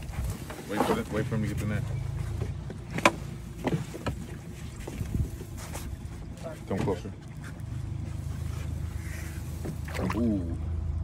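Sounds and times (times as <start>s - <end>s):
wind and water rumble: 0.0s - 11.0s.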